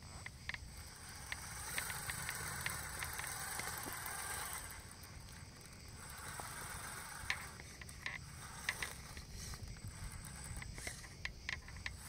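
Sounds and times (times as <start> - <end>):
clicks and rattles on rocks: 0.0 - 12.0
electric drivetrain whirring: 0.0 - 12.0.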